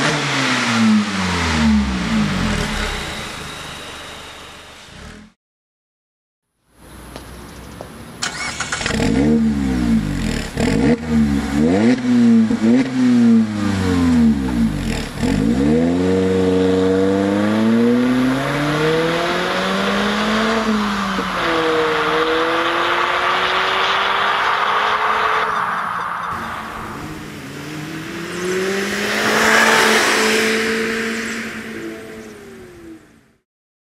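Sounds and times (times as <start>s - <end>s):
car engine accelerating: 0.0s - 5.4s, 8.2s - 33.3s.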